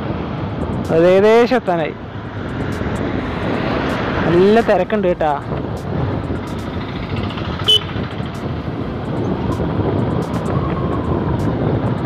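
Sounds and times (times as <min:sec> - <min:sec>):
wind on microphone: 0:00.0 - 0:12.0
motor scooter engine: 0:06.0 - 0:09.8.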